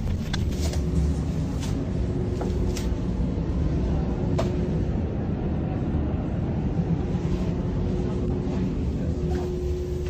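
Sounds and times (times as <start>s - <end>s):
low mechanical rumble with hum: 0.0s - 10.0s.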